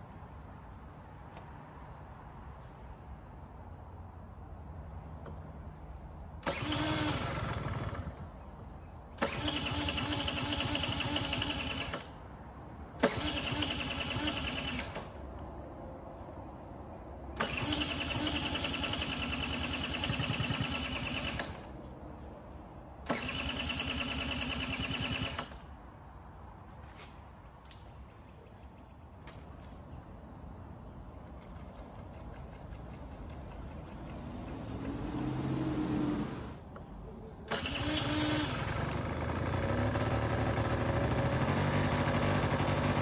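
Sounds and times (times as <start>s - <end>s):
electric starter cranking engine: 6.4s - 8.3s, 9.2s - 12.2s, 13.0s - 15.2s, 17.4s - 21.7s, 23.0s - 25.6s, 37.5s - 43.0s.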